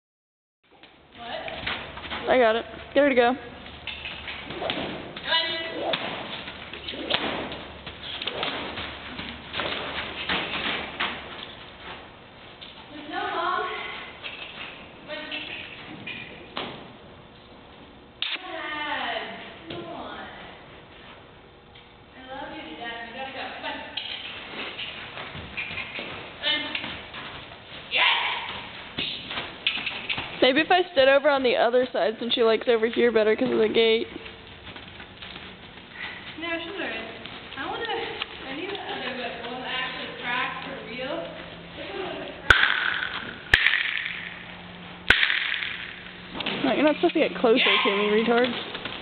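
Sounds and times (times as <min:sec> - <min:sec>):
horse hoofbeats on soft dirt: 0:00.8 - 0:17.0, 0:24.2 - 0:42.3, 0:46.3 - 0:49.0
voices: 0:46.5 - 0:48.6.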